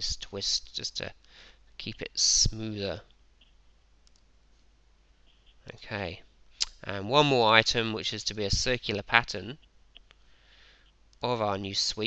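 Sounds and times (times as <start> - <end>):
computer mouse clicks: 3.4 - 4.3.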